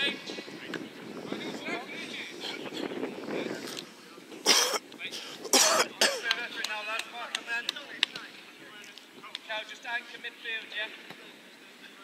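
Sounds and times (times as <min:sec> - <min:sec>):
loud coughs: 0:04.4 - 0:04.8, 0:05.5 - 0:06.3.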